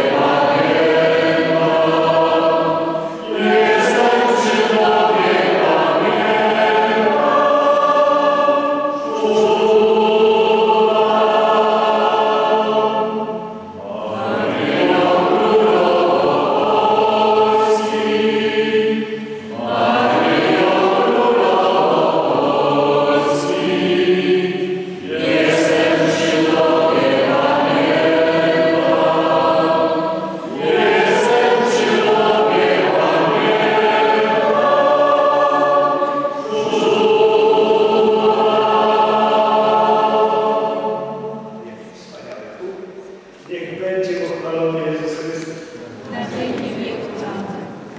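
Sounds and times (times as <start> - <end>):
people singing a hymn: 0.0 - 42.1, 44.0 - 47.9.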